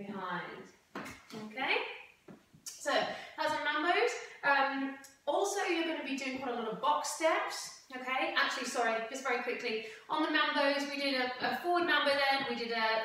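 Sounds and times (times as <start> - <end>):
woman speaking: 0.0 - 0.7, 1.3 - 2.1, 2.7 - 13.0.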